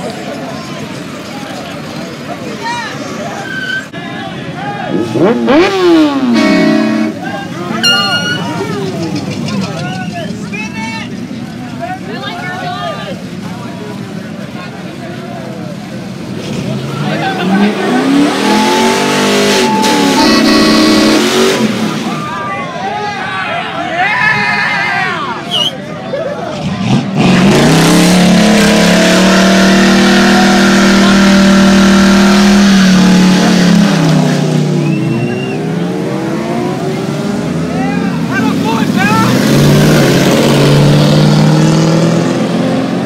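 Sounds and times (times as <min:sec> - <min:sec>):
car engines revving: 0:00.0 - 0:24.2, 0:25.2 - 0:43.0
crowd chatter: 0:00.0 - 0:43.0.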